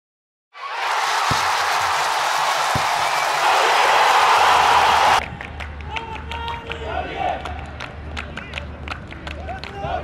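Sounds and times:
crowd cheering and applauding: 0.6 - 10.0.

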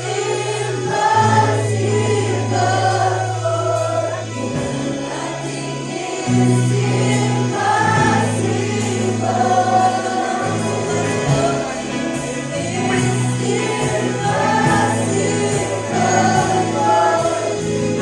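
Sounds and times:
congregation singing: 0.0 - 18.0
electric guitar: 0.0 - 18.0
held bass notes: 0.0 - 18.0
keyboard: 0.0 - 18.0.

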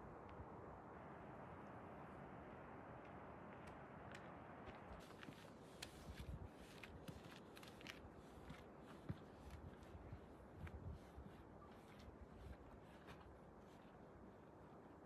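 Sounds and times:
footsteps on gravel: 4.7 - 9.9.

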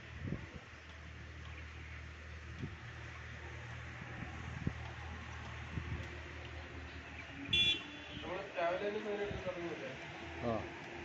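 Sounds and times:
faint town noise: 0.0 - 11.0.

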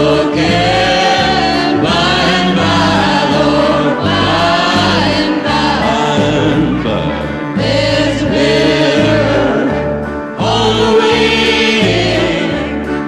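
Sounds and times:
band playing: 0.0 - 13.0
bass line: 0.0 - 13.0
group singing in harmony: 0.0 - 13.0.

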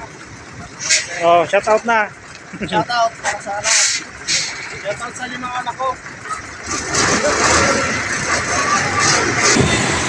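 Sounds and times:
truck diesel engine under load: 0.0 - 10.0.

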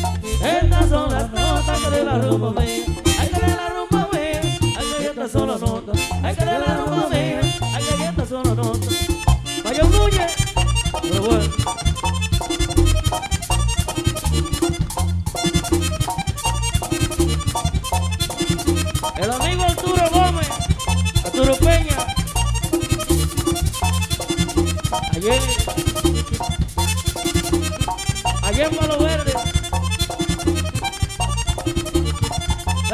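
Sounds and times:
band playing dance music: 0.0 - 32.9
button accordion melody: 0.0 - 32.9.

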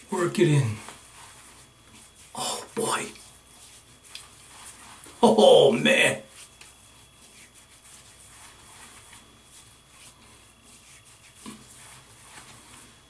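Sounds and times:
hands rubbing face: 0.8 - 13.0.

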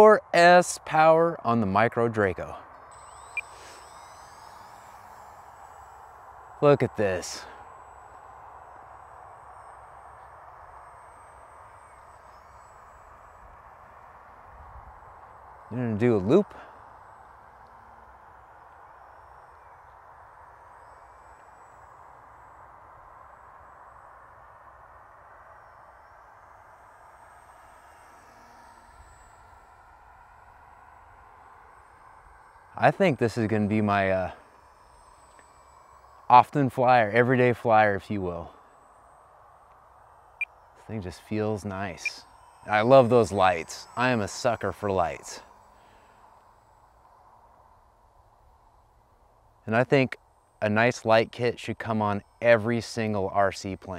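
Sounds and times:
electric motor and propeller hum: 0.0 - 53.9
thin high whine: 0.0 - 53.9.

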